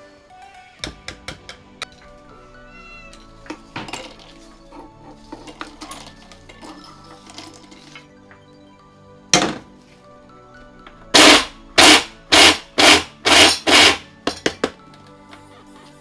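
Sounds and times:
blender motor bursts: 11.2 - 14.0.

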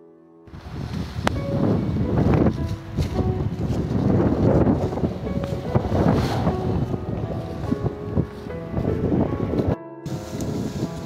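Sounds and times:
background music: 0.0 - 11.0
leafy greens rustling: 0.5 - 9.1
wind noise on microphone: 0.5 - 11.0.

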